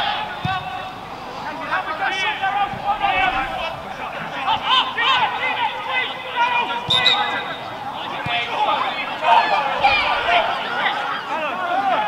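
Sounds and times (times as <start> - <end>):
men shouting outdoors: 0.0 - 12.0.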